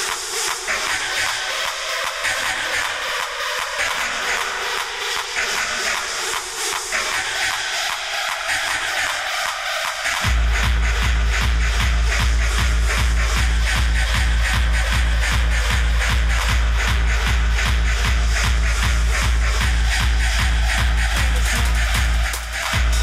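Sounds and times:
hardcore electronic music: 0.0s - 23.0s
heavy kick drum beat: 10.2s - 23.0s.

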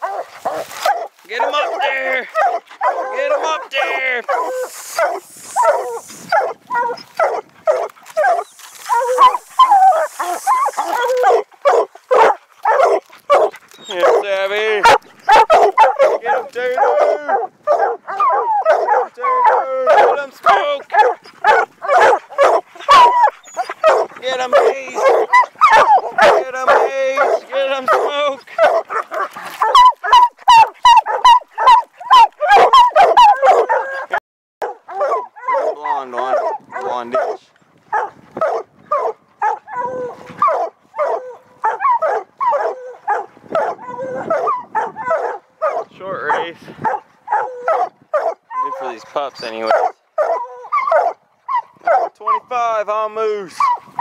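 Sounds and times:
hounds barking and baying: 0.0s - 54.0s.

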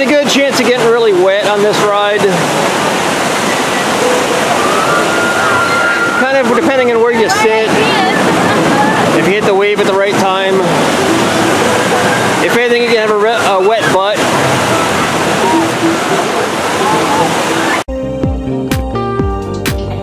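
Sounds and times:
people's voices: 0.0s - 17.8s
rushing whitewater: 0.0s - 17.9s
music: 11.0s - 12.9s, 14.4s - 20.0s.

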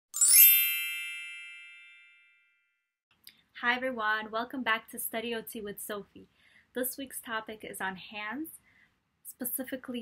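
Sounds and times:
bell-like chime: 0.1s - 2.9s.

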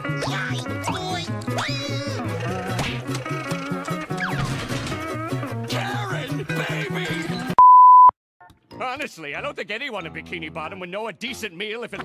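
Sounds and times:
music: 0.0s - 7.6s, 8.4s - 12.0s
steady electronic beep: 7.6s - 8.1s.

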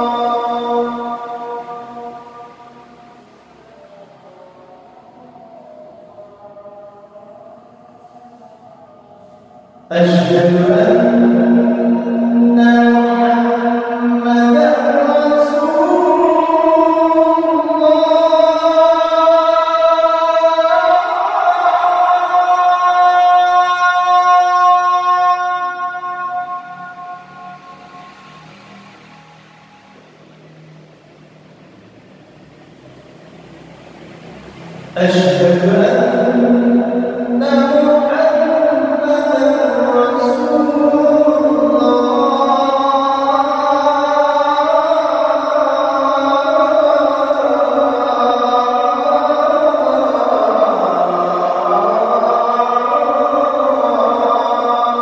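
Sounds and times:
distant sung call to prayer: 0.0s - 55.0s.

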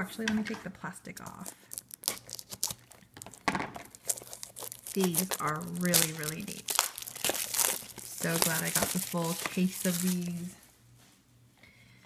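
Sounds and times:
plastic shrink-wrap crinkling: 1.2s - 10.6s.

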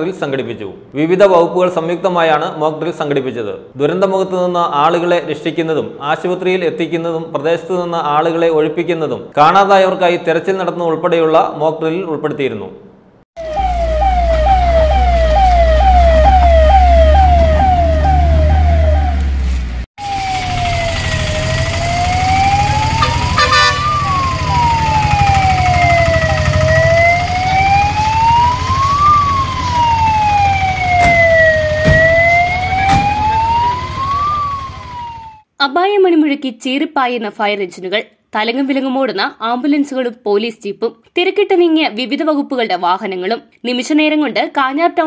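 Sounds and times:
siren wailing: 13.4s - 35.4s
siren yelping: 13.4s - 35.5s
diesel engine rumble: 13.8s - 35.3s.

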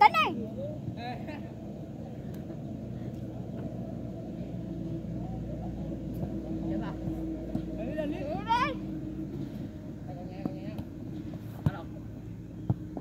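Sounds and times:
low engine drone: 0.4s - 13.0s.

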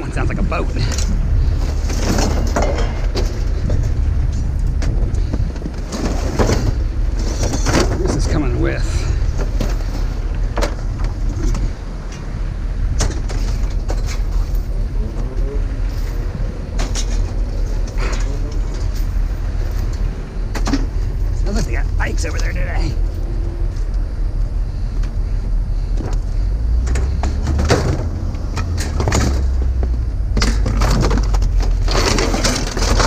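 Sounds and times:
low rumble: 0.0s - 33.0s
scrap metal clanking: 0.8s - 4.4s, 5.2s - 12.3s, 26.7s - 33.0s.

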